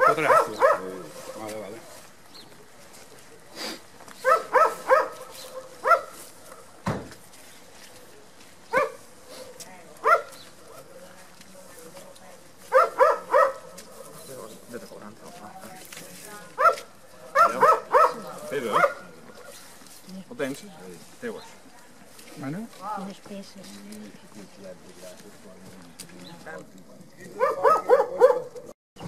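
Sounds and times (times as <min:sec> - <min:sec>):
dog barking: 0:00.0 - 0:02.0, 0:04.2 - 0:06.7, 0:08.7 - 0:10.9, 0:12.7 - 0:14.2, 0:16.6 - 0:19.6, 0:27.4 - 0:28.7.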